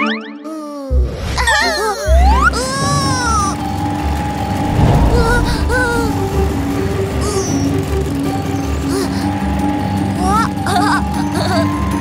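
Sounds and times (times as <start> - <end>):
high-pitched cartoon cry: 0.4 - 3.5
background music held notes: 2.1 - 12.0.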